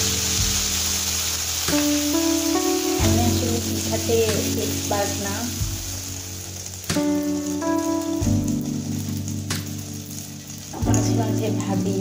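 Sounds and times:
background music: 0.0s - 12.0s
batter sizzling in hot oil: 0.0s - 12.0s.

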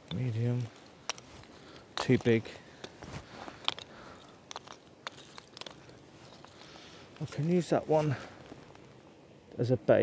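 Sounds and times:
wooden sticks knocking together: 4.5s - 6.6s.

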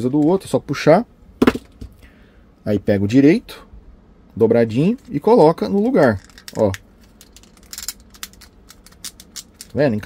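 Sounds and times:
plastic figure clicks and scrapes: 6.2s - 10.0s.

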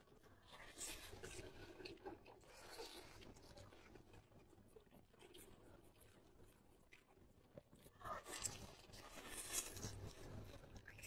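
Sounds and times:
soft scratchy rustle: 4.8s - 11.0s
chewing food: 8.1s - 11.0s.

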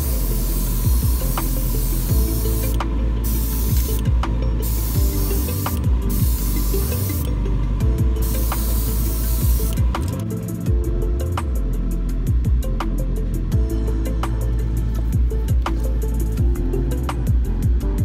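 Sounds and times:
airbrush spraying hiss: 0.0s - 7.3s, 8.1s - 10.6s
background music with beat: 0.0s - 18.0s.

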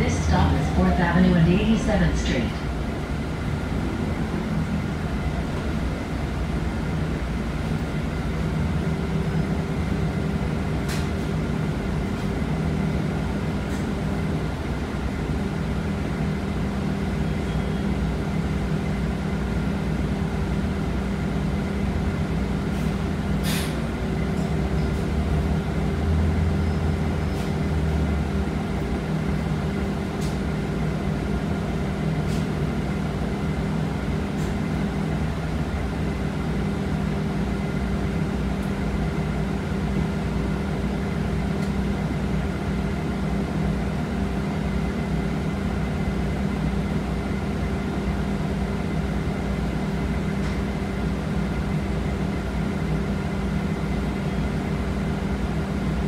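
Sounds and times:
bus cabin running hum: 0.0s - 56.0s.

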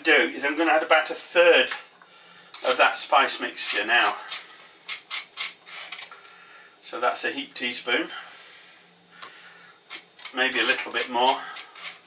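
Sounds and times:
teaspoon scraping stone mortar: 9.9s - 12.0s.

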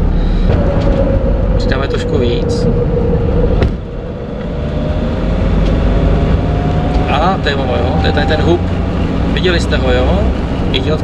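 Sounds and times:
diesel engine low rumble: 0.0s - 11.0s
turbo whine rising in pitch: 0.5s - 11.0s.

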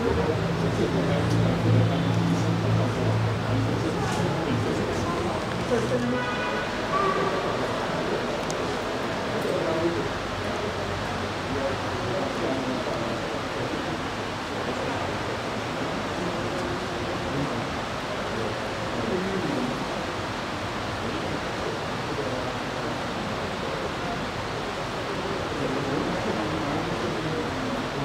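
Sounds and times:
faint murmuring voices: 0.0s - 28.0s.

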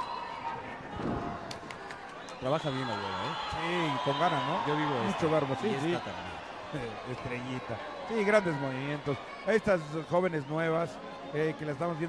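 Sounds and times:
crowd voices in a large hall: 0.0s - 12.0s.

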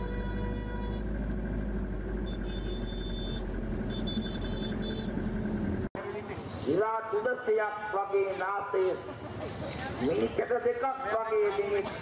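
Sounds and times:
engine rumble: 0.0s - 12.0s.

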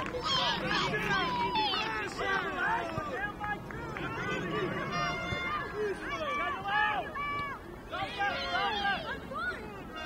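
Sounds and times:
children shouting: 0.0s - 2.9s, 3.9s - 10.0s.

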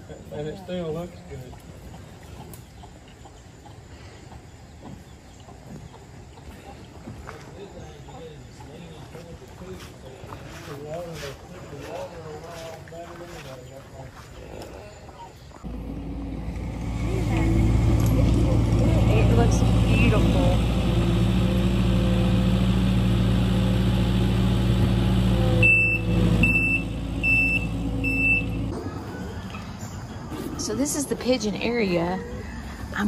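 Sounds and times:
diesel engine running: 15.7s - 28.8s
backup alarm beeping: 25.6s - 28.7s.

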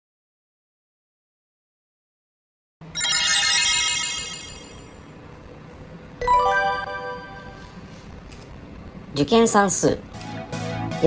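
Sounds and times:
bright shimmering chime: 3.0s - 5.0s.

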